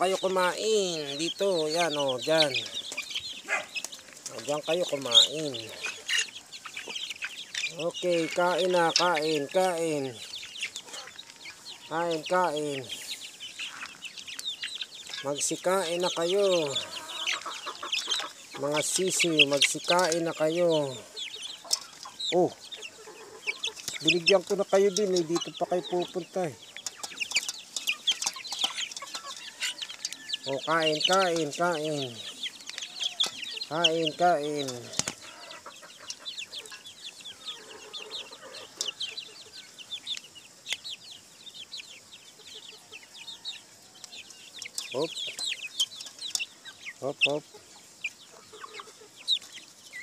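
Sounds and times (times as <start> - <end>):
chicks clucking and peeping: 0.0 - 50.0.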